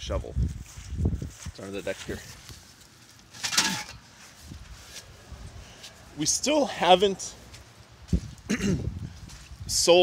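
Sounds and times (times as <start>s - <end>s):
shovel scraping: 3.2s - 5.1s.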